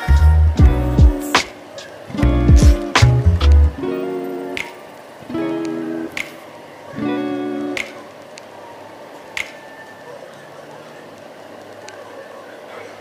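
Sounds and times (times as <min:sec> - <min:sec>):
strummed acoustic guitar chords: 0:00.0 - 0:06.3
sharp click on the beat: 0:00.6 - 0:03.6, 0:04.5 - 0:04.9.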